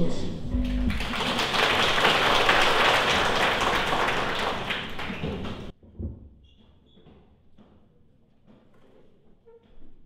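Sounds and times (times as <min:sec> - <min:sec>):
audience applause: 0:00.9 - 0:05.7.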